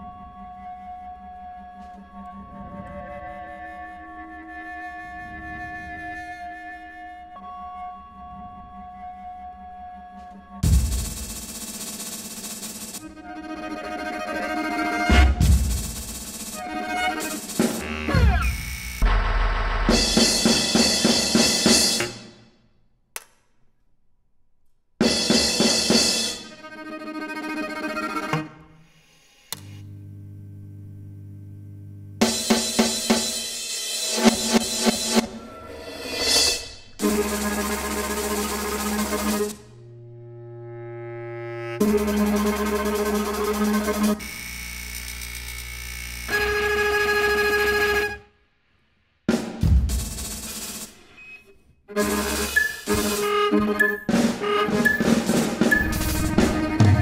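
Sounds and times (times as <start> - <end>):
bass clarinet: 0.0 - 10.6, 13.0 - 15.5, 16.6 - 19.3, 37.0 - 44.2, 46.3 - 48.3, 51.9 - 57.0
drum kit: 10.6 - 13.1, 14.9 - 22.4, 25.0 - 26.5, 32.2 - 39.6, 49.3 - 51.3, 52.0 - 57.0
keyboard: 51.9 - 57.0
live electronics: 52.0 - 57.0.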